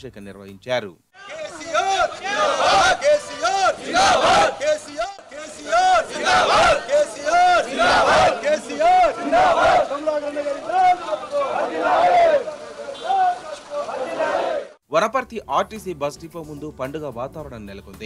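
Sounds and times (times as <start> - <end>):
crowd shouting slogan in unison: 1.2 - 14.8.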